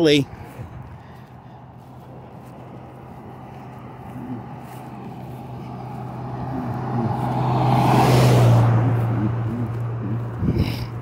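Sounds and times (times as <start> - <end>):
car passing by: 0.3 - 11.0.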